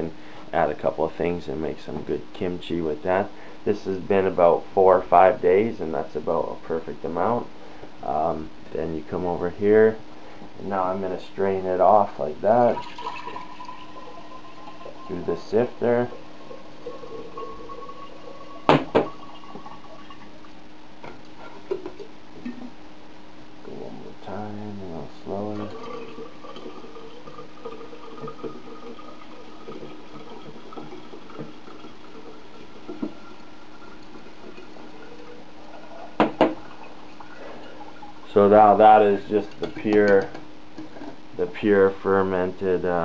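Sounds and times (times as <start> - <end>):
liquid trickling into a jar: 12.6 - 20.5, 25.4 - 39.7.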